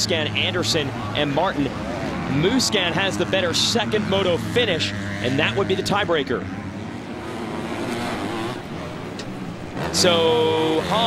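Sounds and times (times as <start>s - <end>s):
motocross bike engines revving: 0.0s - 11.0s.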